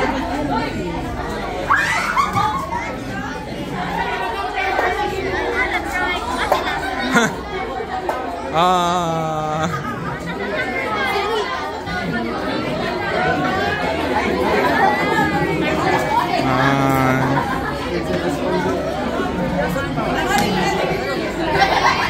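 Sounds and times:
students chattering: 0:00.0 - 0:22.0.

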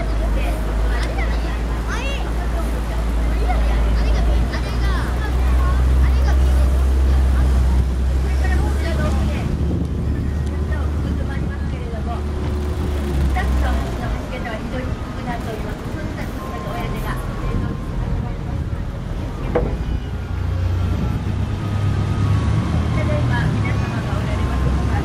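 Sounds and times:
boat motor running: 0:00.0 - 0:25.0
people's voices: 0:00.0 - 0:25.0.

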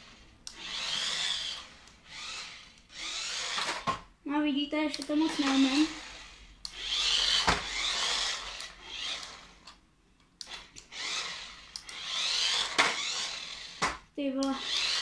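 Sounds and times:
toy car electric motor whirring: 0:00.0 - 0:04.0, 0:05.0 - 0:09.8, 0:10.4 - 0:15.0.

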